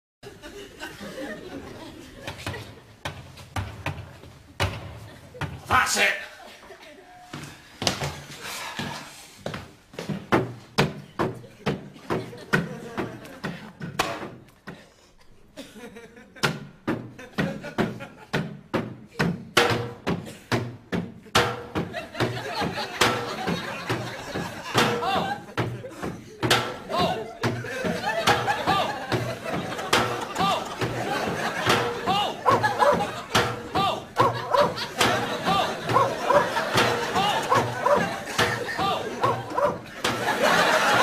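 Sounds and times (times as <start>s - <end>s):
wooden bats striking car body: 19.6s - 20.2s, 24.8s - 25.2s, 26.4s - 27.6s, 29.7s - 35.6s, 36.6s - 39.4s
sharp knocks: 26.4s - 27.6s, 28.2s - 40.3s
indistinct voices chattering: 29.7s - 39.9s.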